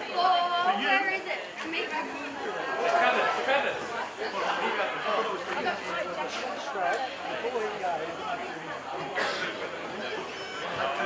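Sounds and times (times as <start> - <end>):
people chattering and calling: 0.0 - 11.0.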